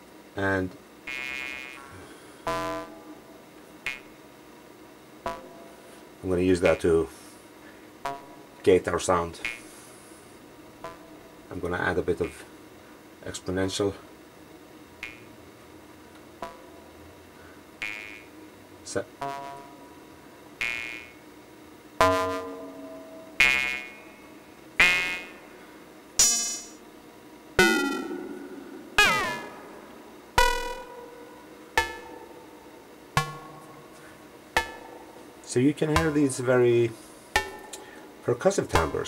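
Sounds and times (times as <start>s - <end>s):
ring-modulated synthesizer hits: 1.1s - 3.2s, 5.2s - 5.8s, 15.0s - 15.4s, 17.8s - 18.3s, 20.6s - 21.2s, 22.0s - 24.2s, 24.8s - 25.4s, 26.2s - 26.8s, 27.6s - 35.2s, 35.9s - 36.4s.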